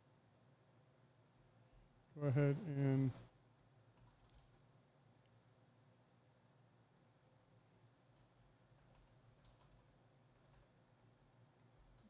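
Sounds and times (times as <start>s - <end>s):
man talking: 2.2s - 3.2s
faint computer clicks: 8.1s - 10.7s.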